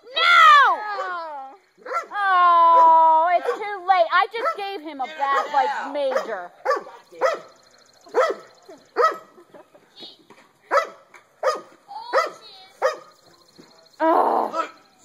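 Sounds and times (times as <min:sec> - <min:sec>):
dog barking: 0:01.8 - 0:03.7, 0:04.4 - 0:04.7, 0:05.3 - 0:09.4, 0:10.7 - 0:13.2.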